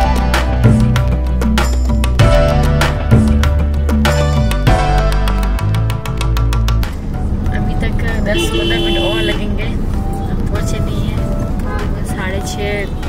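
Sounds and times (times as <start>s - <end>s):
background music with beat: 0.0s - 13.0s
road rumble inside car: 6.9s - 13.0s
vehicle horns honking: 8.0s - 13.0s.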